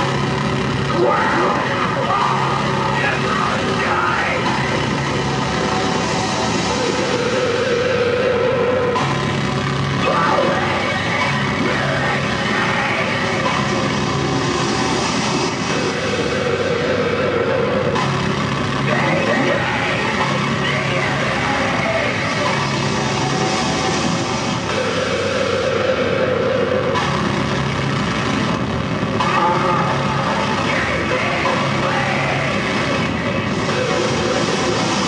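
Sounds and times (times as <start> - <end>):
distorted noise: 0.0 - 35.0
low hum: 0.0 - 35.0
mid-range drones: 0.0 - 35.0.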